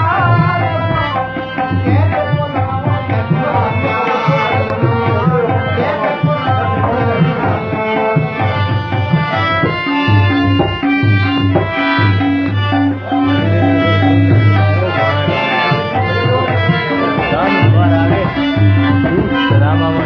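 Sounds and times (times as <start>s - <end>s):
harmonium melody: 0.0s - 20.0s
tabla drums rhythm: 0.0s - 20.0s.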